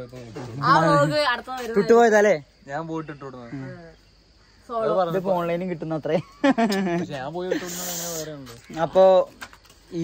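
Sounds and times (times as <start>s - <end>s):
hiss: 7.5s - 8.6s.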